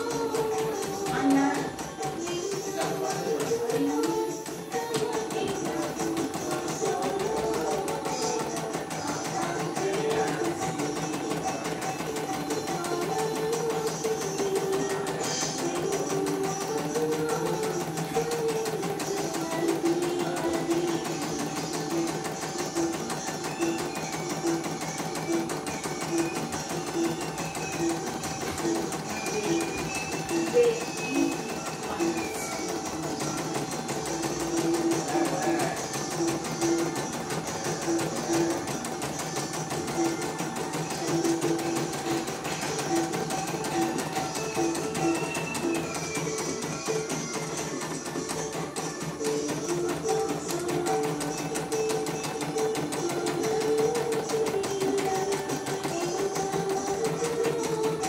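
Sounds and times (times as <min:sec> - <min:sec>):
embroidery machine stitching: 0:00.0 - 0:58.0.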